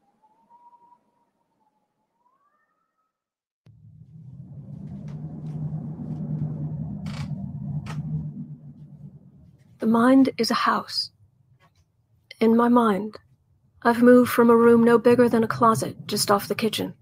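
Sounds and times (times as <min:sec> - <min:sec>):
low gale wind rumble: 0:03.7 - 0:10.4
wind howling: 0:03.7 - 0:10.4
sharp creaks or knocks: 0:04.4 - 0:09.0.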